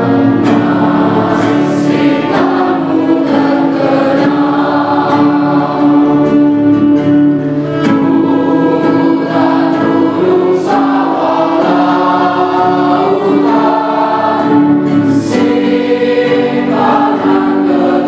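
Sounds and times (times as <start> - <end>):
children's choir singing: 0.0 - 18.0.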